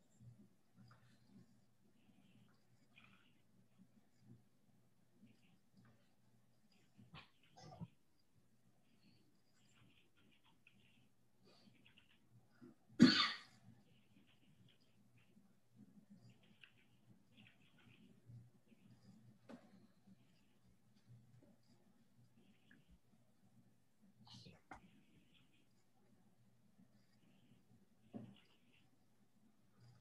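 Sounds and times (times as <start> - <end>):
person coughing: 13.0 - 13.6
faint whisper: 24.0 - 26.1.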